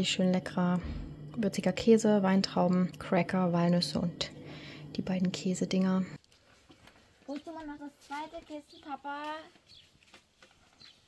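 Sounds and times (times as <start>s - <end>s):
woman's voice: 0.0s - 6.2s, 7.3s - 9.6s.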